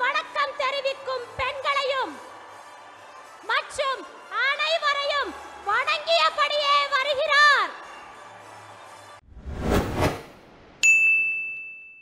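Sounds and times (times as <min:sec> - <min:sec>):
whoosh: 0:09.3 - 0:10.8
bright bell-like ding: 0:10.8 - 0:12.0.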